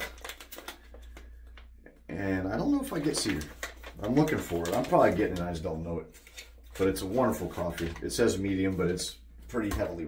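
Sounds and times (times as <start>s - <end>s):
coffee bag crinkling: 0.0s - 1.6s, 2.5s - 9.0s.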